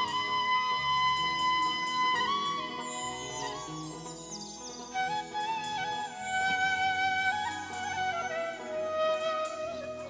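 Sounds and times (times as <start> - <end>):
bamboo flute melody: 0.0 - 10.0
harmonium accompaniment: 0.0 - 10.0.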